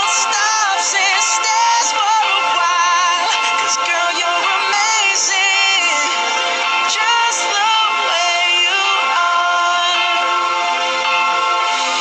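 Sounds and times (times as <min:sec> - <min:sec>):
pop song with lead vocal: 0:00.0 - 0:12.0.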